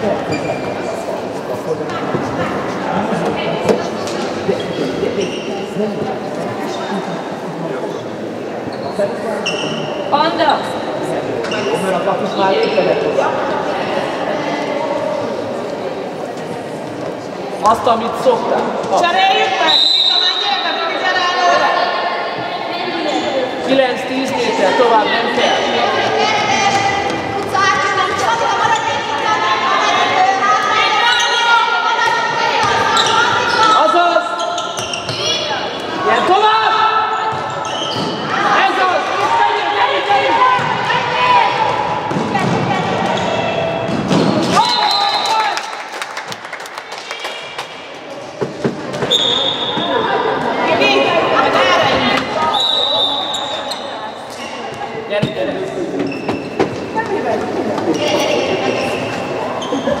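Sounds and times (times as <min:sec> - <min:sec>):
players shouting and calling: 0:18.6 - 0:45.9.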